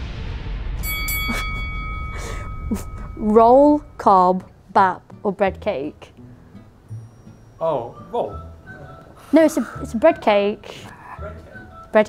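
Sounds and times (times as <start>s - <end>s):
bell-like ding: 0.8s - 4.1s, 6.9s - 7.8s
brief laugh: 1.2s - 3.0s.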